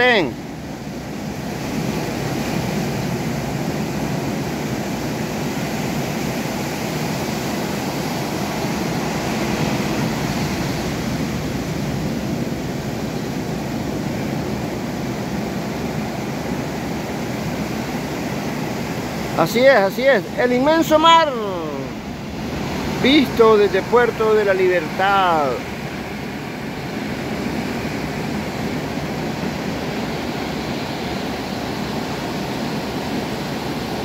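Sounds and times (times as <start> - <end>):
ocean surf breaking: 0.0 - 34.0.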